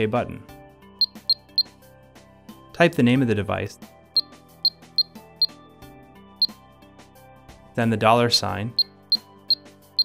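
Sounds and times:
soft background music: 0.0 - 10.0
alarm keypad beeps: 1.0 - 1.7.

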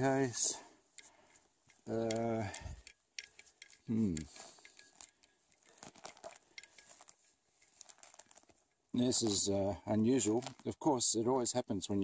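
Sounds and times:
hand pulling apart soil and roots: 3.7 - 10.9.

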